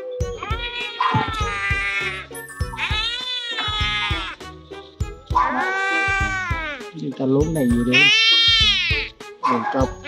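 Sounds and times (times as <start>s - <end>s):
background music with a beat: 0.2s - 7.9s.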